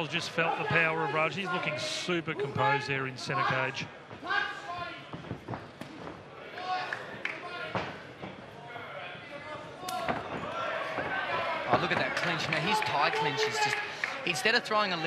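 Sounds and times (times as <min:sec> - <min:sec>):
crowd shouting: 0:10.0 - 0:15.0.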